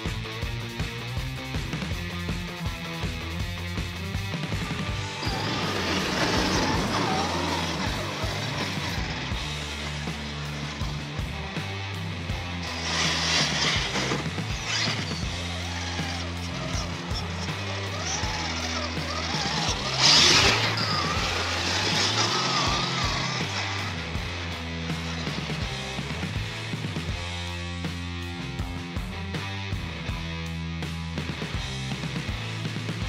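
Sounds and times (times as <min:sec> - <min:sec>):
rock music: 0:00.0 - 0:33.0
electric motor and gear whine: 0:02.8 - 0:27.6.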